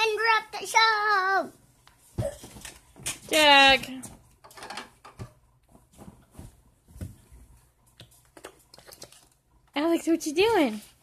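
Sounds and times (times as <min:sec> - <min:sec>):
faint soft knocks and rustles: 0:01.8 - 0:09.3.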